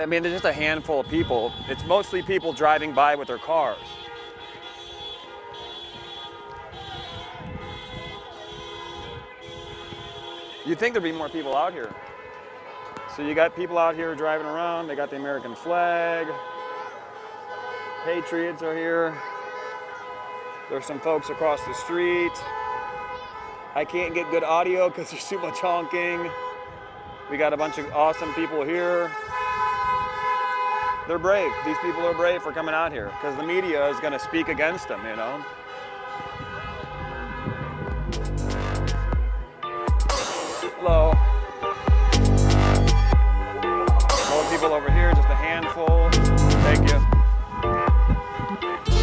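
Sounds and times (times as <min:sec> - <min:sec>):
car horns blasting: 0:00.0 - 0:49.0
traffic rumbling: 0:00.0 - 0:49.0.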